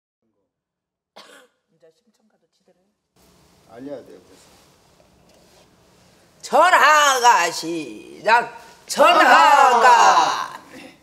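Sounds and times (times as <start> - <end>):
person coughing: 1.2 - 1.6.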